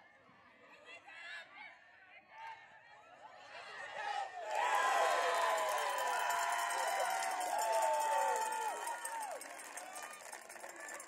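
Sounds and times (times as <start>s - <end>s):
crowd cheering: 3.8s - 11.0s.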